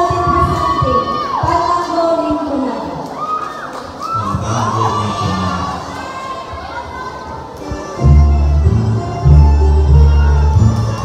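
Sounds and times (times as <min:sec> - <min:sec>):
children cheering and shouting: 0:03.1 - 0:11.0
music playing: 0:07.3 - 0:11.0.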